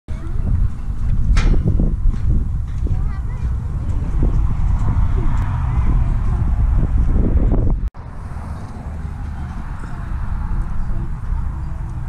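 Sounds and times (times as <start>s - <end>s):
wind buffeting microphone: 0.1s - 12.0s.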